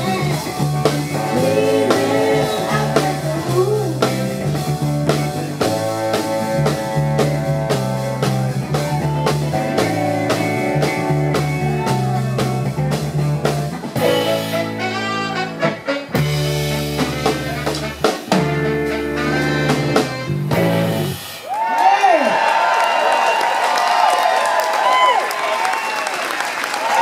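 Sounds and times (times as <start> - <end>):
drum beat: 0.0 - 21.2
soul band playing: 0.0 - 21.6
woman singing: 1.0 - 4.2
audience cheering and whooping: 21.3 - 27.0.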